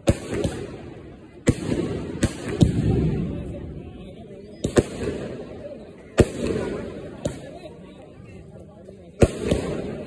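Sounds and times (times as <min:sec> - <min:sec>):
firework bursting overhead: 0:00.0 - 0:07.5.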